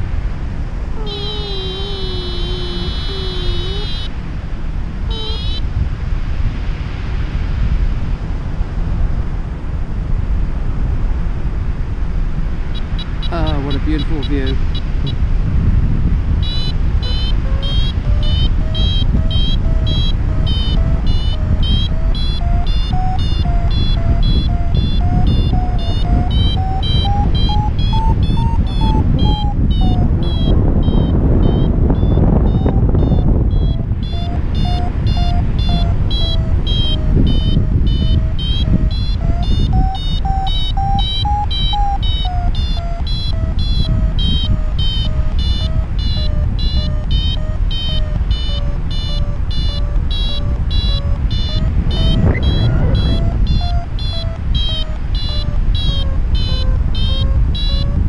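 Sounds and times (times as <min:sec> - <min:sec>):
wind rushing over microphone: 0:00.0 - 0:58.0
variometer beeping: 0:00.9 - 0:04.2, 0:05.1 - 0:05.8, 0:12.7 - 0:15.3, 0:16.3 - 0:58.0.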